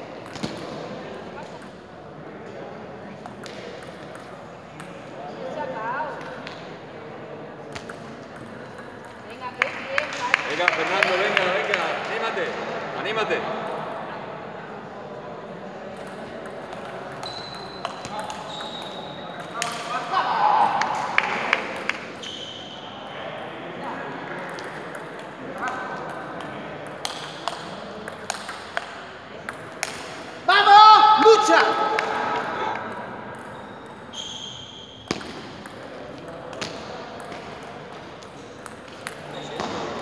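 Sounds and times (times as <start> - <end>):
voices in a hall: 0.0 - 40.0
table tennis balls clicking: 7.8 - 10.2, 15.9 - 19.9, 24.4 - 30.1, 35.1 - 40.0.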